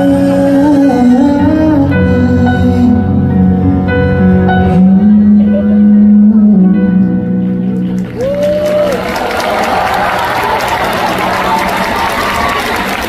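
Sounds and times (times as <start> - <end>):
audience clapping and cheering: 7.6 - 13.0.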